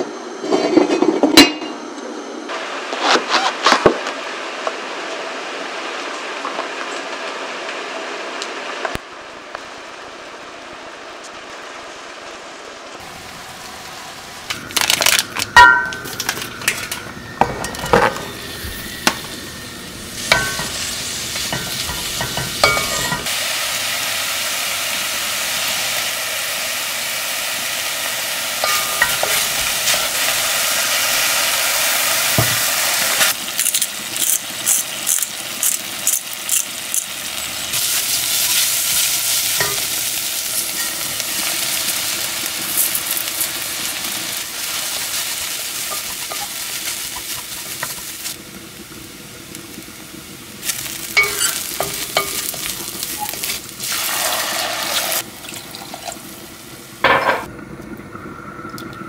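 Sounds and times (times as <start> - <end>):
mushrooms sizzling in butter: 4.9 - 57.0.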